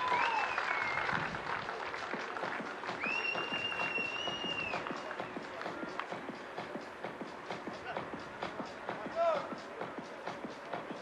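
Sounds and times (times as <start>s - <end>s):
hand clapping: 0.0s - 6.2s
whistle blowing: 3.0s - 4.9s.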